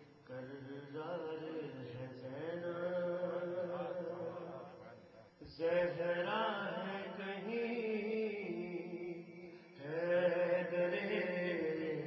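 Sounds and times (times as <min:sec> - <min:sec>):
man chanting: 0:00.2 - 0:12.0.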